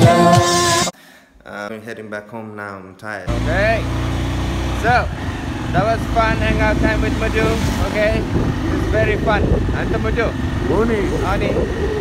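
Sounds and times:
vehicle engine humming: 0:03.3 - 0:12.0.

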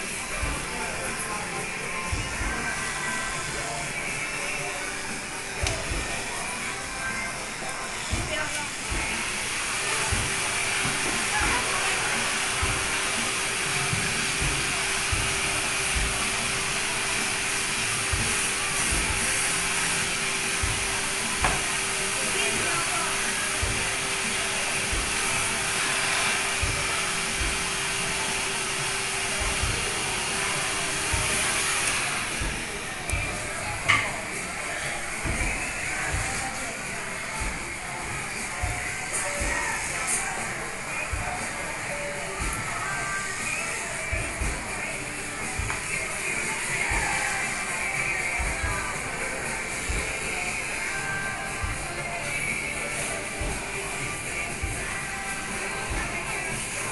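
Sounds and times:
background music: 0:00.0 - 0:56.9
electric hair clippers: 0:08.8 - 0:33.2.

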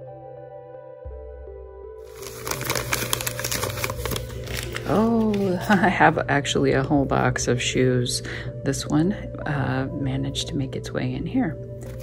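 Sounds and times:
paper crinkling and rustling: 0:02.0 - 0:06.0, 0:11.8 - 0:12.0.

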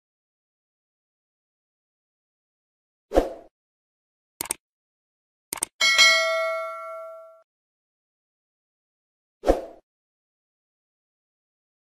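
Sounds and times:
bell-like notification ding: 0:05.8 - 0:07.4.

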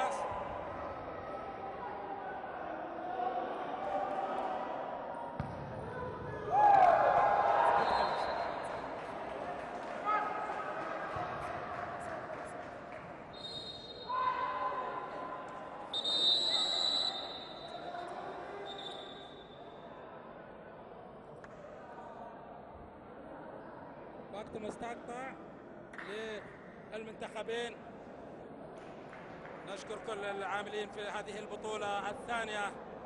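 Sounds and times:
players and spectators shouting: 0:00.0 - 0:08.8, 0:14.0 - 0:19.0
ball kicked and bouncing: 0:05.4 - 0:05.7
high whistling: 0:13.3 - 0:14.2, 0:15.9 - 0:17.9.

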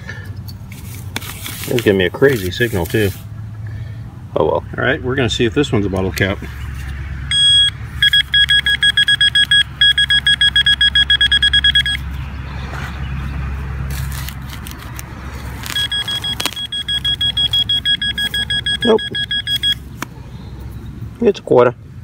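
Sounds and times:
metal detector beeping rapidly: 0:07.3 - 0:12.0, 0:15.6 - 0:19.9.

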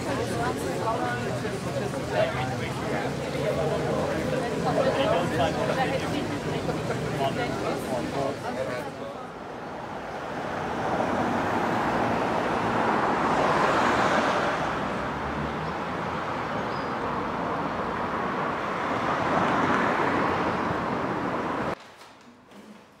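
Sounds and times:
cars passing: 0:00.0 - 0:21.8
street traffic noise: 0:00.0 - 0:23.0.

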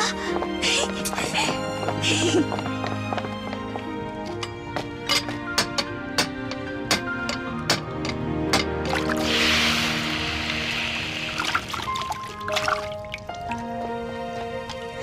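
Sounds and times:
background music sustained tones: 0:00.0 - 0:15.0
hot steel hissing in water: 0:09.0 - 0:12.2.

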